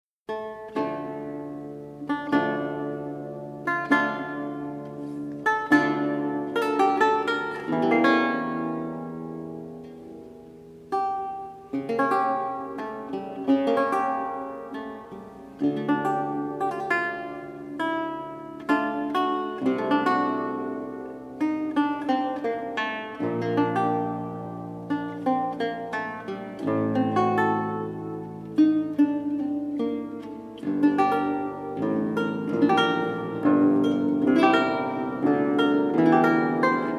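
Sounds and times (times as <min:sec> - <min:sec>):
solo lute playing: 0:00.3 - 0:36.9.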